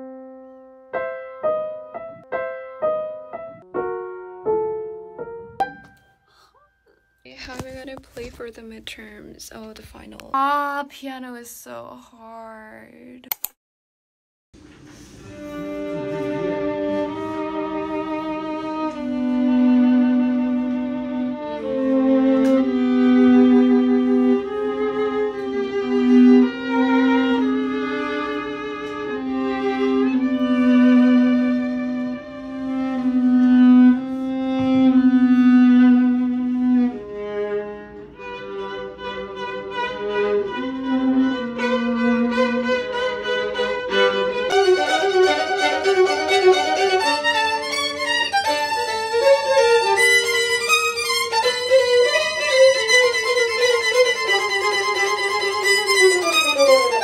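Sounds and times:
two violins playing duet: 0:14.8 - 0:57.0.

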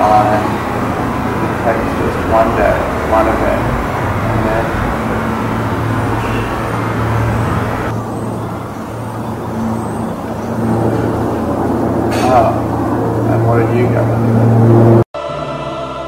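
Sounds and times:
low rumble: 0:00.0 - 0:15.0.

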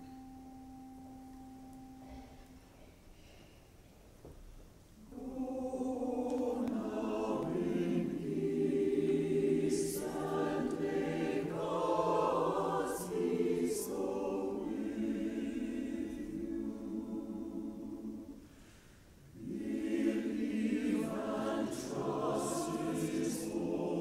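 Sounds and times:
choir singing: 0:05.0 - 0:18.6, 0:19.3 - 0:24.0.

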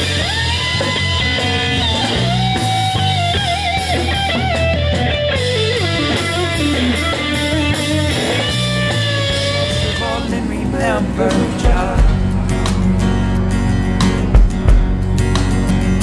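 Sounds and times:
electric guitar lead melody: 0:00.0 - 0:16.0
low backing: 0:00.0 - 0:16.0.

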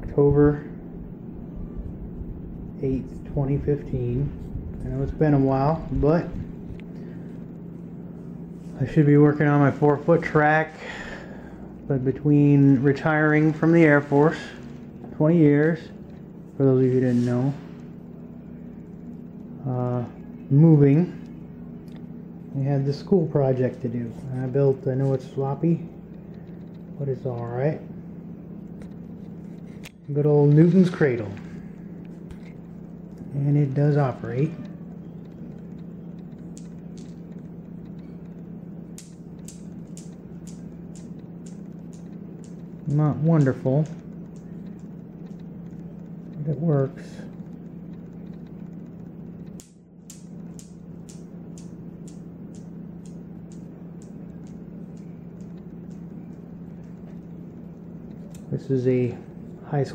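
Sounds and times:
steady low hum: 0:00.0 - 0:59.9
newton's cradle balls clicking: 0:38.9 - 0:45.6, 0:49.4 - 0:57.3.

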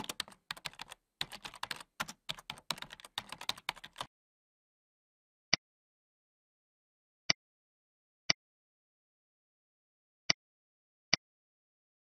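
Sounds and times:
computer keyboard typing: 0:00.0 - 0:04.1.

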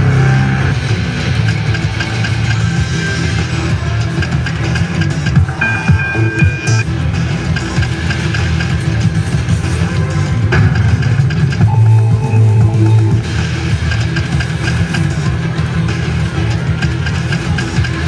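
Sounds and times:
slot machine electronic music: 0:00.0 - 0:18.0
casino noise: 0:05.6 - 0:06.8, 0:11.6 - 0:13.7.

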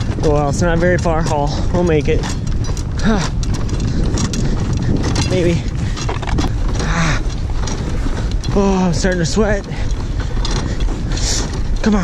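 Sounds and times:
footsteps: 0:00.0 - 0:12.0
gear knocking: 0:00.0 - 0:12.0
wind rumble on microphone: 0:00.0 - 0:12.0.

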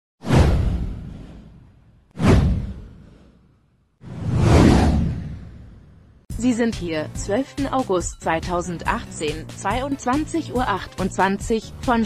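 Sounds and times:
whoosh sound effect: 0:02.2 - 0:03.4, 0:04.0 - 0:06.0.

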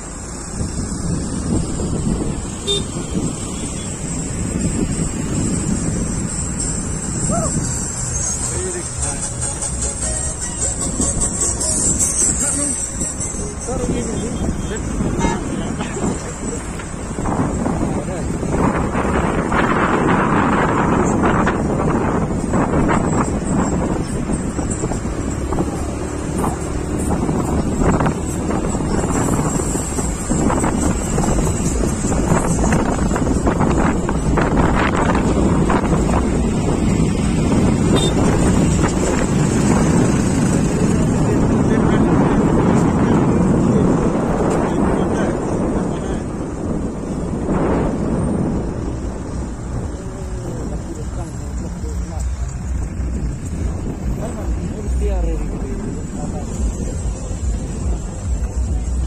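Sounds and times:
wind buffeting microphone: 0:00.0 - 0:09.3, 0:10.7 - 0:59.0
car road and engine noise: 0:00.0 - 0:59.0.

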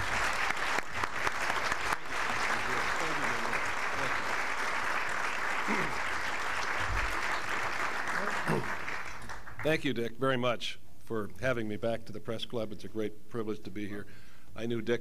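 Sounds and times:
audience applauding: 0:00.0 - 0:09.8.

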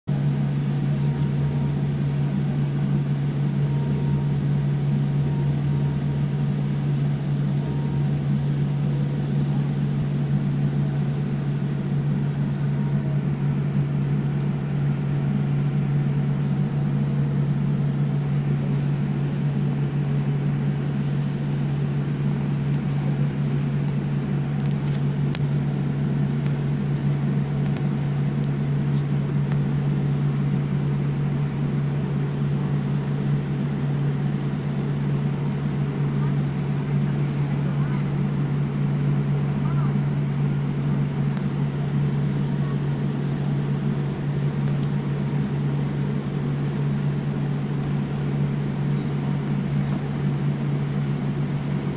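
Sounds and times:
jet cabin drone: 0:00.0 - 0:51.9.

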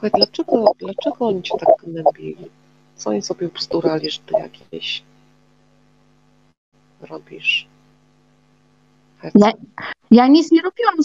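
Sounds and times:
faint electrical mains hum: 0:00.0 - 0:11.0
woman speaking: 0:09.4 - 0:11.0.

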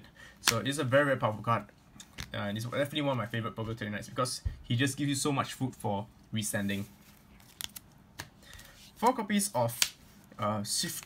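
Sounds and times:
plastic card sleeves scraping: 0:06.4 - 0:11.0.

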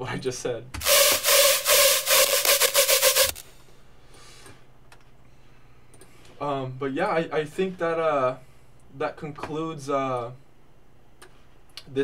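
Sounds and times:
pulsing distorted synth tone: 0:00.8 - 0:03.4.

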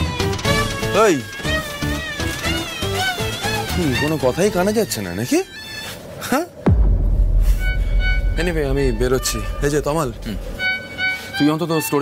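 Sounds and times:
background music score: 0:00.0 - 0:12.0.

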